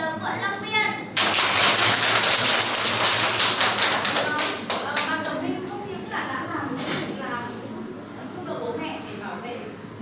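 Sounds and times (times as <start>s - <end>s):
children clapping: 1.2s - 5.4s.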